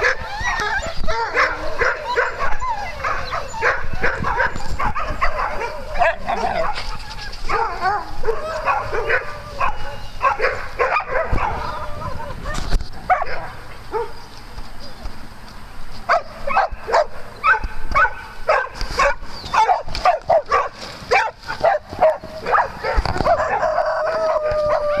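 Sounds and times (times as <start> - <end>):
dogs barking and yipping: 0.0 - 15.0, 16.1 - 25.0.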